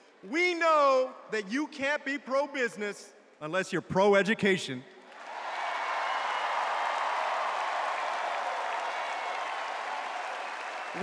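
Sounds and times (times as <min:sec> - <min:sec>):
large audience applauding: 0:05.0 - 0:11.0.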